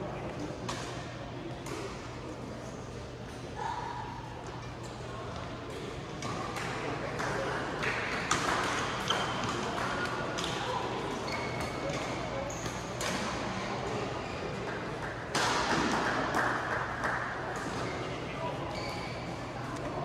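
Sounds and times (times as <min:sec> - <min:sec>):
people talking in echoing hall: 0:00.0 - 0:20.0
shoe squeaks on court floor: 0:18.7 - 0:19.4.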